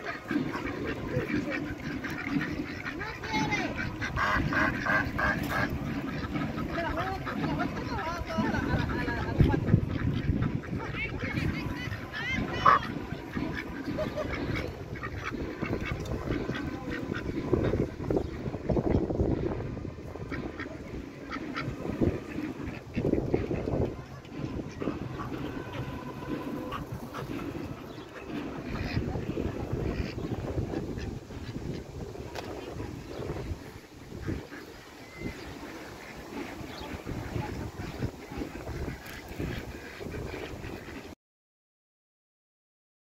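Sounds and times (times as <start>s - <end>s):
people's voices: 0.0s - 41.0s
ducks quacking: 0.0s - 41.2s.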